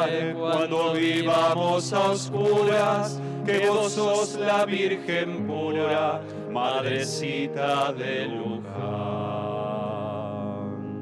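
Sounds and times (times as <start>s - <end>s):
instrumental accompaniment chord: 0.0s - 11.0s
person singing hymn with vibrato: 0.0s - 11.0s.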